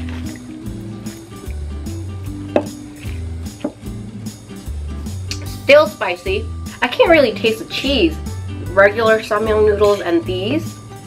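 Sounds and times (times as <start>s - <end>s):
background music with bass line: 0.0s - 11.0s.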